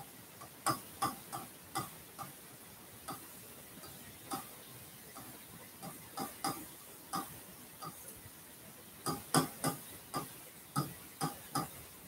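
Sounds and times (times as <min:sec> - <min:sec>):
pen tapping on glass board: 0:00.7 - 0:02.3, 0:09.1 - 0:11.8.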